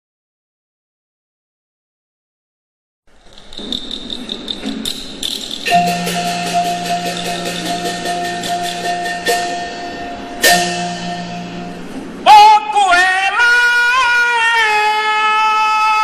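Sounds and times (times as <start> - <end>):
rapid wooden and drum strikes: 3.2 - 9.6
loud struck accent: 3.8 - 15.0
long held instrumental notes: 5.6 - 12.8.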